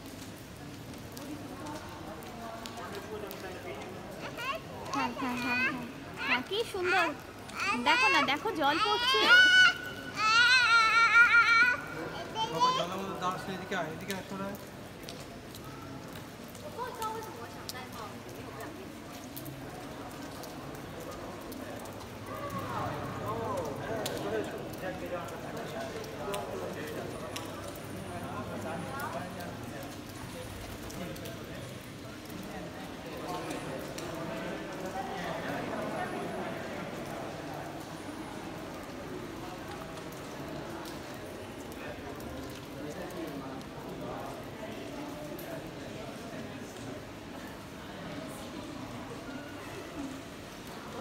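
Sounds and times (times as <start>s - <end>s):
quiet scattered voices: 0.0s - 51.0s.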